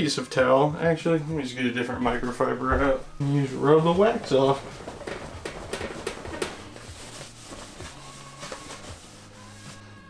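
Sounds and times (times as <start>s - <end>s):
cloth wiping strokes: 2.2s - 10.0s.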